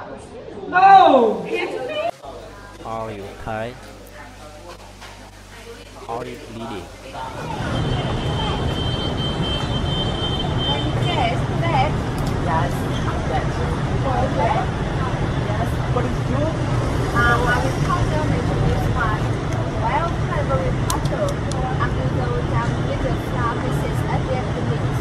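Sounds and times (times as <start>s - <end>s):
people talking: 0.0s - 8.9s, 10.4s - 25.0s
road traffic rumble: 2.2s - 25.0s.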